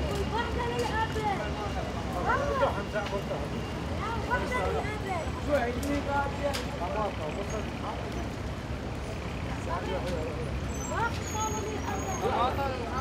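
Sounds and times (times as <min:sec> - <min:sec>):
traffic rumble: 0:00.0 - 0:13.0
voices talking indistinctly: 0:00.0 - 0:13.0.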